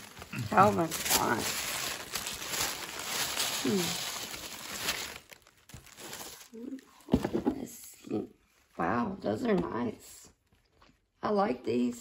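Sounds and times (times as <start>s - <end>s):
tissue paper rustling: 0.0s - 7.4s.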